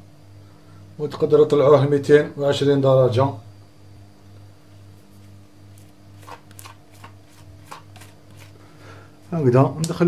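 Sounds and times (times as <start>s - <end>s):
steady low hum: 0.0s - 10.0s
spatula scraping mixing bowl: 6.1s - 8.6s.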